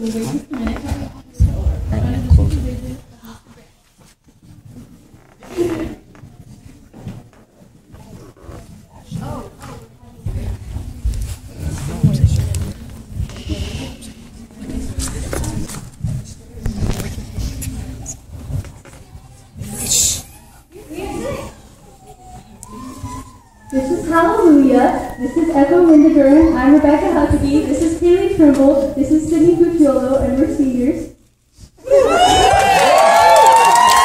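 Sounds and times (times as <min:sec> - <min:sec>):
murmur of voices: 0:00.0 - 0:32.3.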